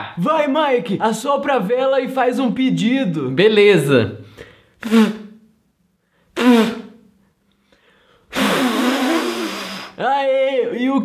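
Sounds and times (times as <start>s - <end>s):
person blowing at candle: 4.8s - 5.5s, 6.2s - 7.2s, 8.0s - 10.0s.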